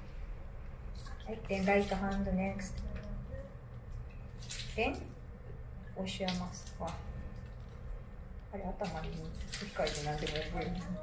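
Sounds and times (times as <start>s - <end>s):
water splashing onto stones: 8.8s - 11.0s.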